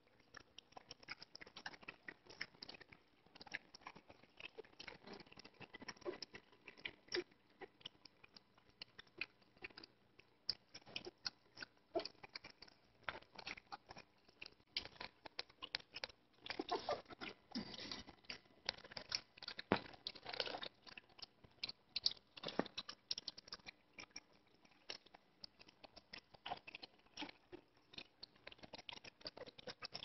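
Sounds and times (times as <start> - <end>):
puppies chewing and mouth clicks: 0.0 - 30.0.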